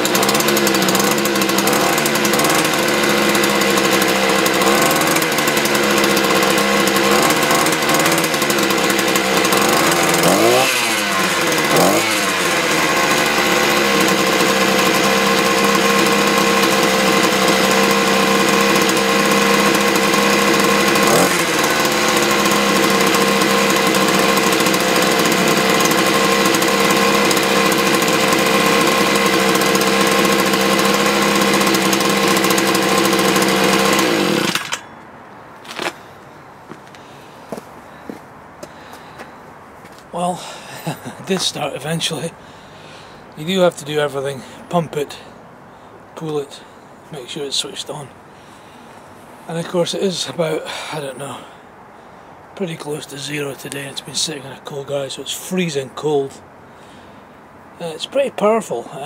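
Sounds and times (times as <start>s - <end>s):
petrol engine idling and revving: 0.0s - 35.1s, 40.2s - 45.2s.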